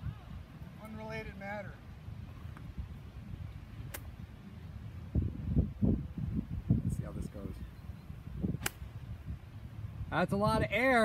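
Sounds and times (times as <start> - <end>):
golf club striking ball: 8.6 - 8.9.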